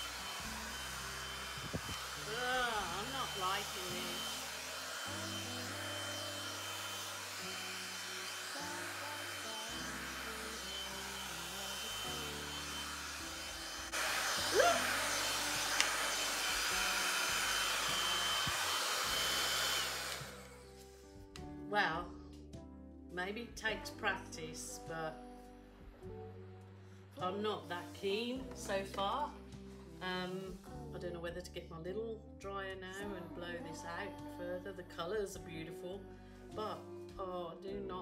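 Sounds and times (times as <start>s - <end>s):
hair dryer blowing: 0.0s - 20.8s.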